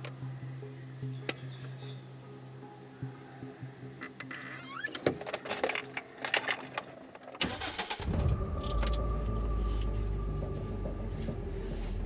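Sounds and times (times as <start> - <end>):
car keys jangling and clicking: 5.2 - 7.6
car engine starting and idling: 7.4 - 12.0.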